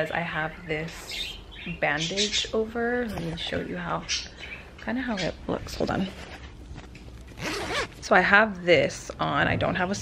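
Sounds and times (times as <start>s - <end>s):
shirt fabric rustling: 5.9s - 8.1s.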